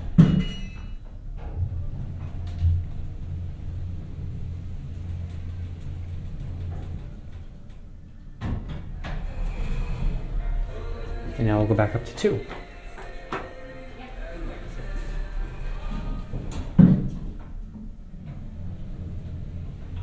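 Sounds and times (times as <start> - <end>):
elevator doors sliding open: 0.0 - 20.0
elevator low hum and whine: 0.0 - 20.0
elevator doors thumping shut: 16.0 - 17.6.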